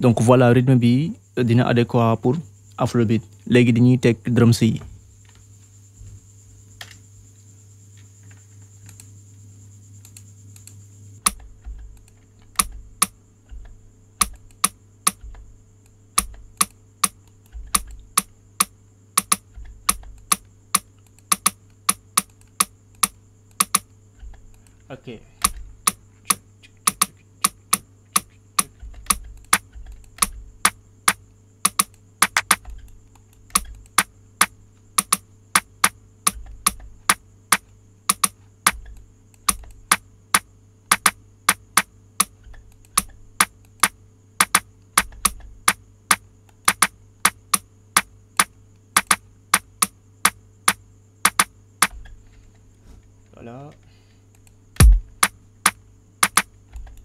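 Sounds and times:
computer mouse clicking: 0:10.0 - 0:24.8, 0:25.4 - 0:45.8, 0:46.5 - 0:52.1, 0:56.2 - 0:57.0.

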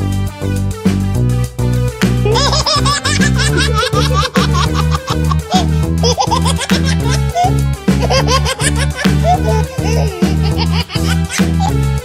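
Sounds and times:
upbeat children's music: 0:00.0 - 0:12.0
baby-like giggling: 0:02.2 - 0:11.8.

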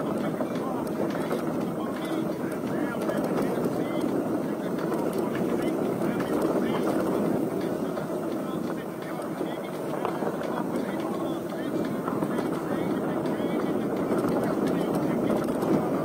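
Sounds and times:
faint rattles and clicks: 0:00.0 - 0:16.0
tyre rumble on dirt trail: 0:00.0 - 0:16.0
wind rush over microphone: 0:00.0 - 0:16.0.

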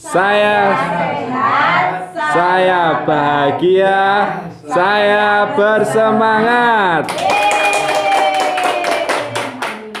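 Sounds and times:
group clapping hands: 0:07.0 - 0:10.0.

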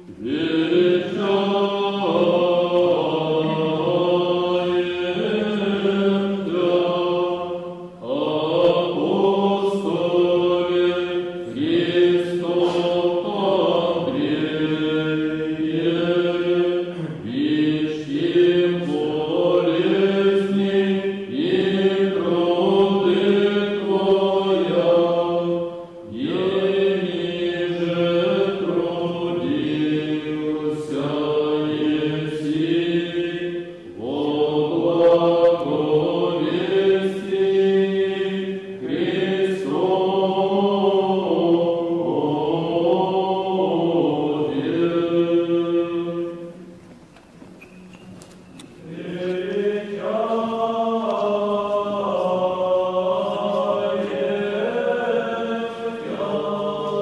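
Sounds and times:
voices chanting long held notes: 0:00.0 - 0:46.8, 0:48.8 - 0:57.0.

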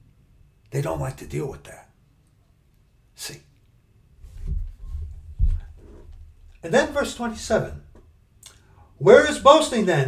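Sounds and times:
hands bumping and rustling: 0:04.3 - 0:06.4.

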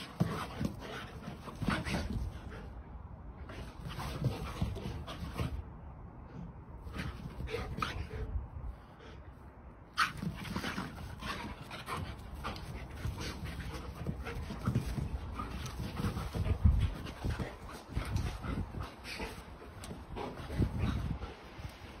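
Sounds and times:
dogs scuffling: 0:00.0 - 0:02.7, 0:03.5 - 0:05.6, 0:10.0 - 0:22.0
dogs panting: 0:10.0 - 0:22.0.

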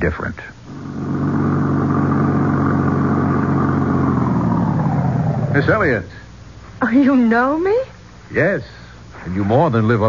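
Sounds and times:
jeep engine running: 0:00.6 - 0:06.2.

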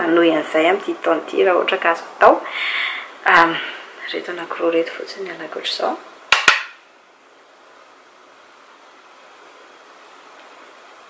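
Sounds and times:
low steady room hiss: 0:00.0 - 0:11.0.

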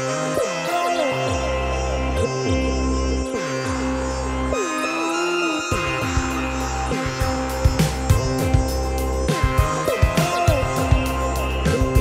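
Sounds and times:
sustained synth bass: 0:05.7 - 0:12.0.

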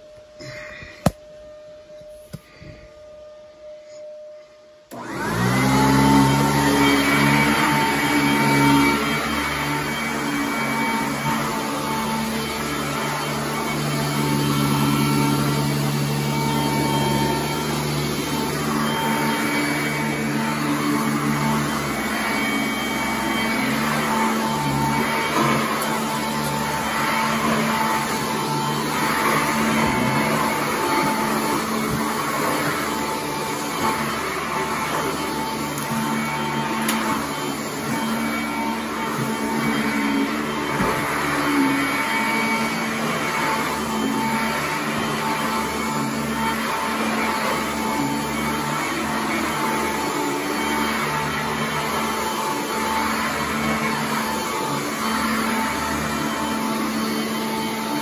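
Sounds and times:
vacuum cleaner motor whining: 0:00.0 - 0:58.0.

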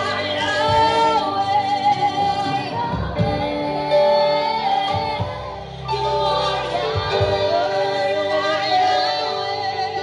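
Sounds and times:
group singing worship song: 0:00.0 - 0:10.0.

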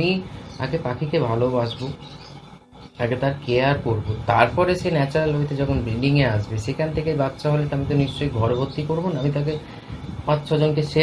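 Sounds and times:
man speaking: 0:00.0 - 0:02.0, 0:03.0 - 0:11.0.

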